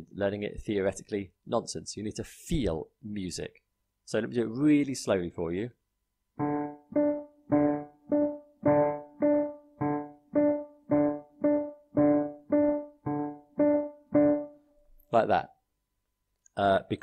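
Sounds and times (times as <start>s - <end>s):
digital piano repeating one note: 6.4s - 14.7s.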